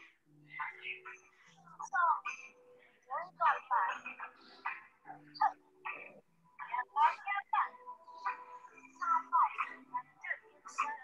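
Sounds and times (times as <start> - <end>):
woman speaking over video call: 1.7 - 4.3, 6.6 - 7.8, 8.9 - 11.0.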